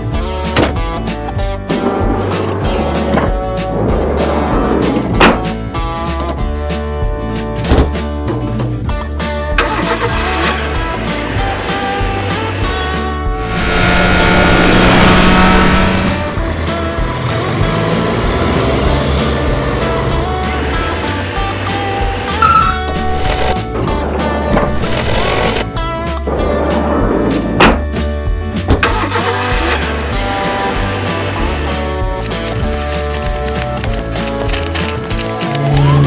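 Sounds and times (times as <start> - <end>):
background music with steady beat: 0.0 - 36.0
vehicle engine sound effect: 9.6 - 25.7, 28.8 - 36.0.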